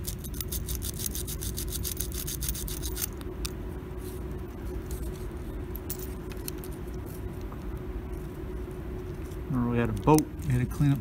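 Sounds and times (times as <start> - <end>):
abrasive strip rubbing metal contacts: 0.0 - 7.5
steady low hum: 0.0 - 11.0.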